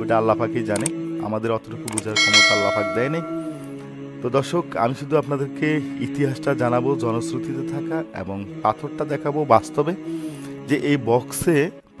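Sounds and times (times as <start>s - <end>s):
background music: 0.0s - 12.0s
metallic clang ringing: 2.2s - 3.8s.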